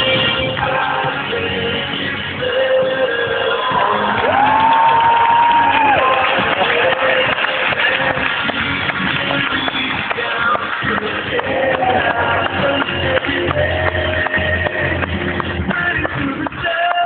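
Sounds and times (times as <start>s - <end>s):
loud live music with guitar: 0.0s - 17.0s
crowd cheering: 3.0s - 15.0s.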